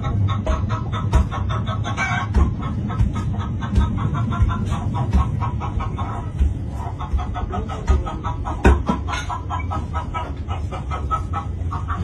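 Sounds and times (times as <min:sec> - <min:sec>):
pestle pounding in mortar: 0:00.0 - 0:10.4
wet clucking sounds: 0:00.0 - 0:12.0.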